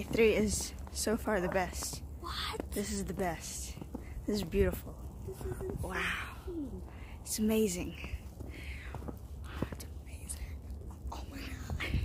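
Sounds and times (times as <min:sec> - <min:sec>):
wind buffeting microphone: 0:00.0 - 0:12.0
breathy whispering voice: 0:08.6 - 0:12.0.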